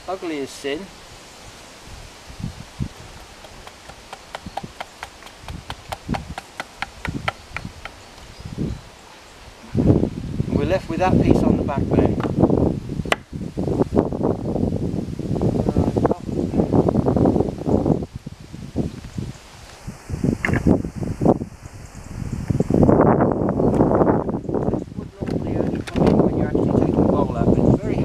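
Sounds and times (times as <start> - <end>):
wind buffeting microphone: 0.0 - 28.0
axe knocking on wood: 3.4 - 8.0.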